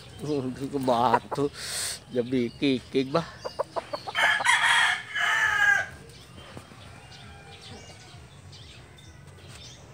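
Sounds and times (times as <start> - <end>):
rooster crowing: 4.2 - 5.9.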